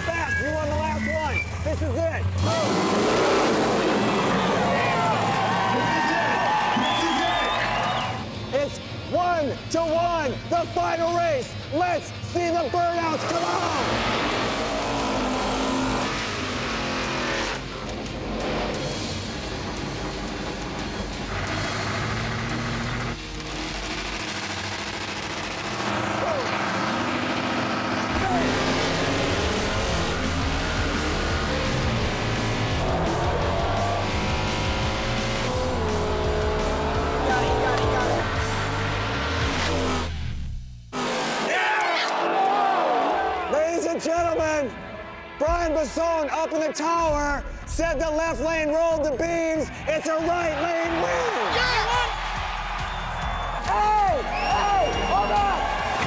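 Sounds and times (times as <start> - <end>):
drag cars racing: 0.0 - 8.3, 13.1 - 40.2, 40.9 - 41.6
background music: 0.0 - 41.8, 42.4 - 56.0.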